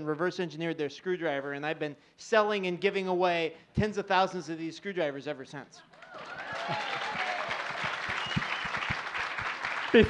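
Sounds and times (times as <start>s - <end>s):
audience applauding: 5.9s - 10.0s
audience laughing: 6.5s - 7.4s.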